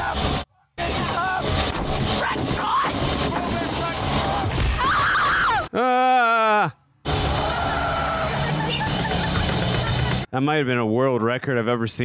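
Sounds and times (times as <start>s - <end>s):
voices yelling: 2.1s - 9.0s
dense soundtrack music: 7.0s - 10.3s.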